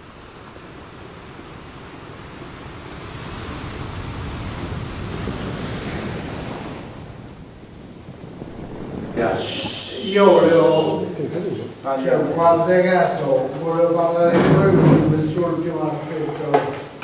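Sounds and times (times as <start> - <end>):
sea waves rushing in: 0.0 - 16.2.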